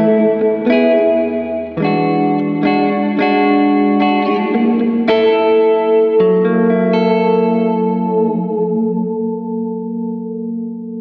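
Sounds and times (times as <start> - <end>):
electric guitar chord with reverb: 0.0 - 11.0.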